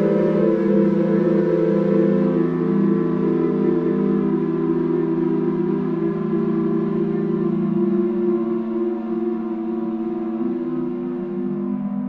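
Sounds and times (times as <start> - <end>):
ambient electronic droning tones: 0.0 - 12.0.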